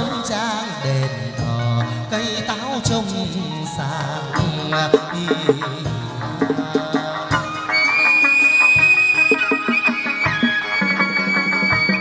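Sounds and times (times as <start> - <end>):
short rhythmic lower notes: 4.9 - 7.1.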